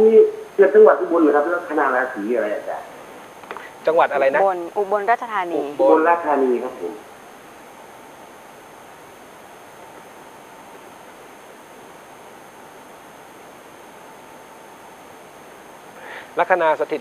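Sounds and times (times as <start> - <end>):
background hiss: 0.0 - 17.0
faint steady tone: 0.0 - 17.0.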